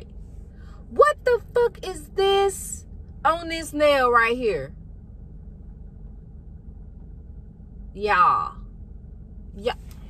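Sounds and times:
car idling low rumble: 0.0s - 10.0s.

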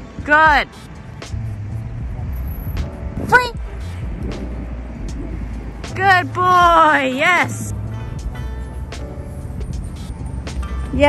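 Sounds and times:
low city rumble: 0.0s - 11.0s.

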